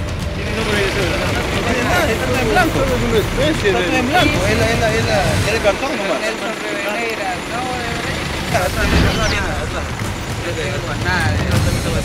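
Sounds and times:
men talking over one another: 0.3s - 12.0s
low rumble: 8.5s - 10.6s.

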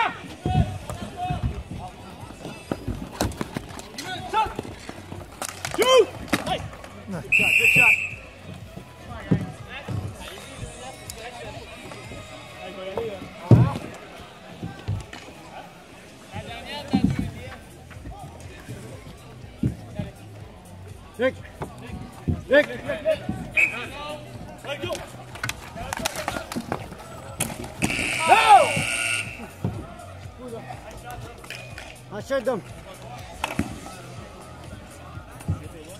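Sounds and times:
background music with steady beat: 0.0s - 35.9s
background voices of players: 0.0s - 35.9s
players shouting: 5.6s - 8.6s, 22.7s - 30.3s
referee's whistle: 7.3s - 8.3s, 23.5s - 24.0s, 27.8s - 29.5s.

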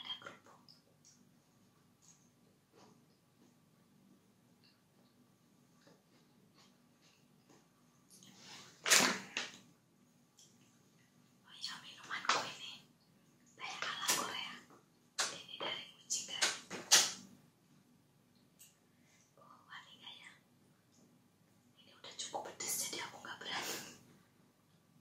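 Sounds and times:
woman whispering: 0.0s - 0.5s, 11.4s - 12.9s, 13.6s - 14.7s, 15.3s - 16.4s, 19.4s - 20.4s, 21.8s - 24.0s.

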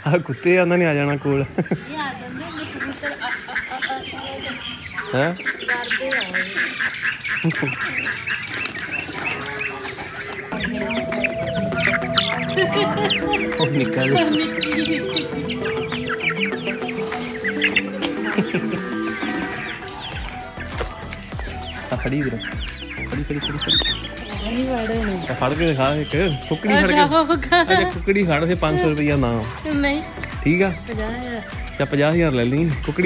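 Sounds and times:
hens clucking: 0.0s - 33.0s
background music: 10.3s - 33.0s.

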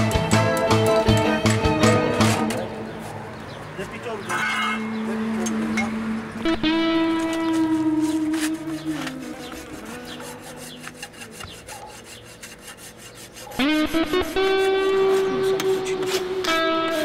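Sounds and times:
background music with held notes: 0.0s - 2.8s, 13.6s - 17.0s
rasp filing hoof: 6.5s - 17.0s.

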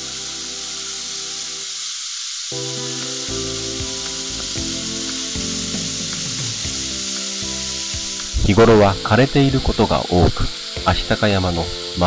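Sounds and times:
soft background music: 0.0s - 1.9s, 2.5s - 12.0s
waterfall rushing: 0.0s - 12.0s.

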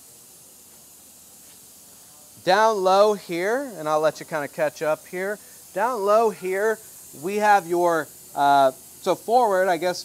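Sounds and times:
faint room tone hiss: 0.0s - 10.0s.

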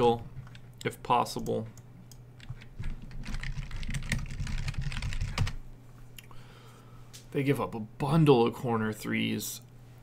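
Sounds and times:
fast typing on keyboard: 2.4s - 5.6s.

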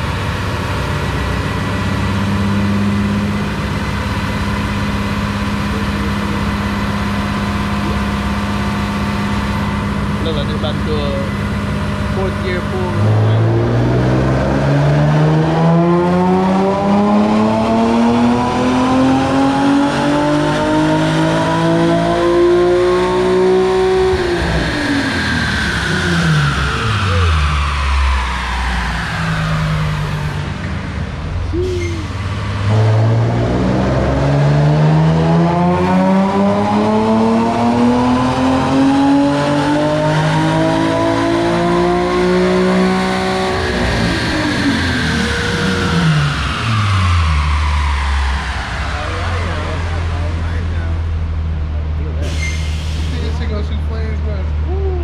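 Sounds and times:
car engine revving at full throttle: 0.0s - 54.8s.

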